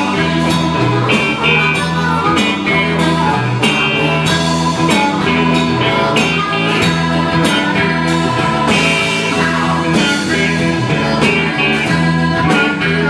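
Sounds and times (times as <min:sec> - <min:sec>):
electric blues band playing: 0:00.0 - 0:13.0
harmonica wailing: 0:00.0 - 0:13.0.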